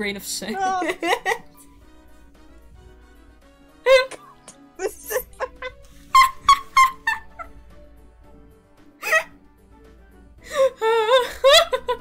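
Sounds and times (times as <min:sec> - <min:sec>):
quiet background music: 0:00.0 - 0:12.0
person laughing: 0:00.6 - 0:01.6, 0:03.9 - 0:07.6, 0:10.6 - 0:12.0.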